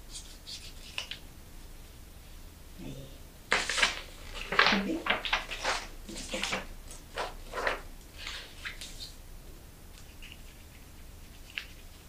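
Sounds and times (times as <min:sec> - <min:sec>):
paper rustling: 0:03.5 - 0:09.2.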